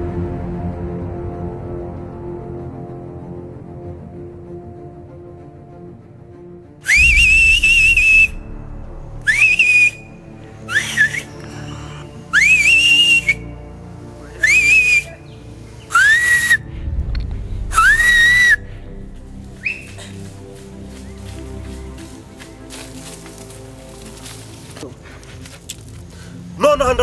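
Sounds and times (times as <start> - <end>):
quiet background music: 0.0 - 27.0
man whistling loudly: 6.9 - 8.4, 9.3 - 11.4, 12.3 - 13.5, 14.4 - 15.2, 15.9 - 16.6, 17.8 - 18.6, 19.6 - 20.0.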